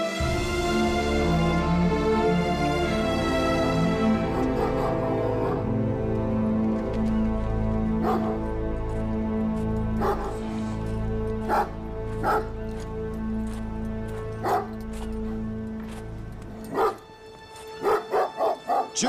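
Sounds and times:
low film score music: 0:00.0 - 0:19.0
dog barking: 0:04.2 - 0:05.7, 0:08.0 - 0:08.4, 0:10.0 - 0:10.4, 0:11.4 - 0:12.5, 0:14.4 - 0:14.8, 0:16.7 - 0:17.0, 0:17.8 - 0:19.0.

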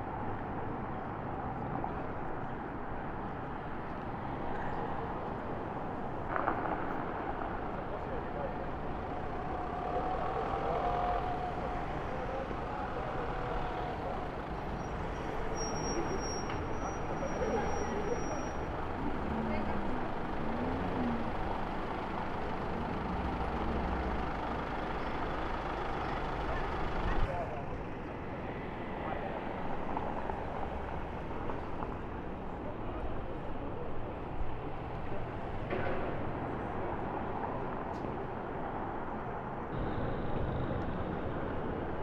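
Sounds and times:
cars passing slowly: 0:00.0 - 0:42.0
people talking: 0:15.9 - 0:21.4, 0:26.4 - 0:27.8.

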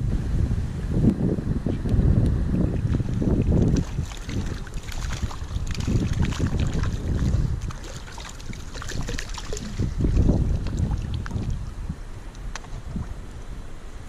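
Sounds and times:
wind buffeting microphone: 0:00.0 - 0:14.0
fish splashing and thrashing: 0:02.8 - 0:11.7.

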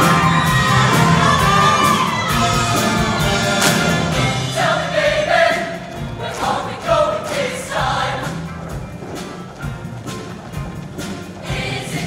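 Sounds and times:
live band playing: 0:00.0 - 0:07.1
choir singing: 0:00.0 - 0:08.5, 0:11.4 - 0:12.0.

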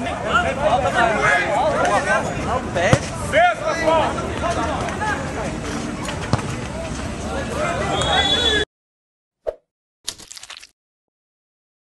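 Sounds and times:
outdoor background noise: 0:00.0 - 0:08.6.

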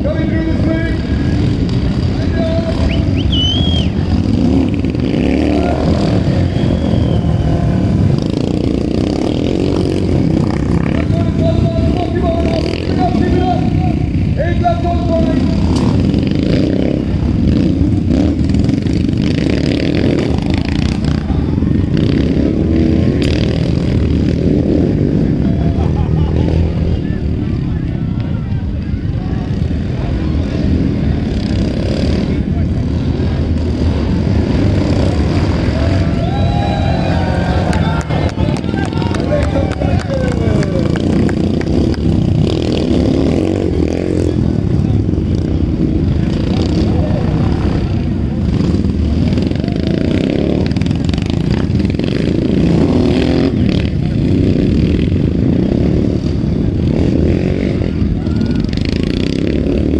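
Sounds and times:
racing motorcycle engines: 0:00.0 - 0:59.9
voices: 0:00.0 - 0:59.9
spectators shouting: 0:25.2 - 0:30.3, 0:35.2 - 0:41.5, 0:57.7 - 0:59.1.

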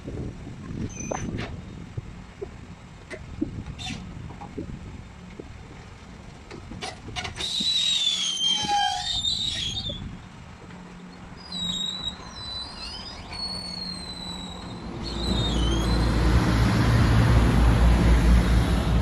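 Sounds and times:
street traffic: 0:00.0 - 0:19.0
truck engine rumble: 0:00.0 - 0:19.0
garbage truck compactor squealing: 0:07.3 - 0:10.0, 0:11.4 - 0:16.1.

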